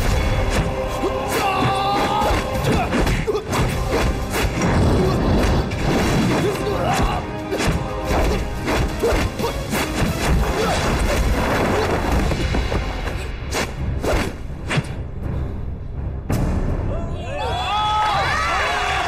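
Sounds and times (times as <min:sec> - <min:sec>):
dramatic film score: 0:00.0 - 0:19.0.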